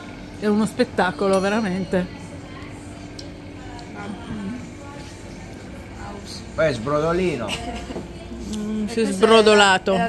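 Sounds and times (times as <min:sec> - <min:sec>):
low ambient hum: 0:00.0 - 0:10.0
faint background voices: 0:01.8 - 0:06.6.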